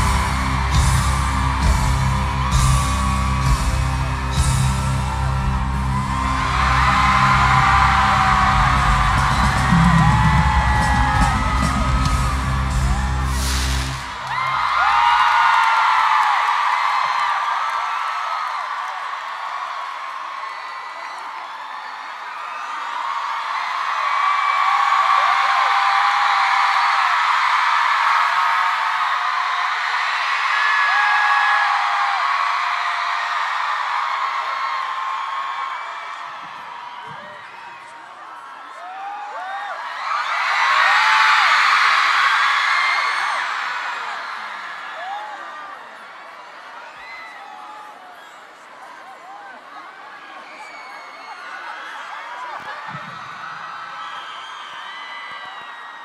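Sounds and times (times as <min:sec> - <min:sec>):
live band music with drums: 0:00.0 - 0:14.2
crowd screaming: 0:00.0 - 0:56.0.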